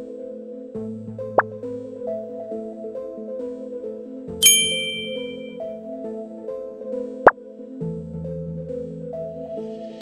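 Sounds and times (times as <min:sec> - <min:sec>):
bright bell-like ding: 0:04.4 - 0:05.6.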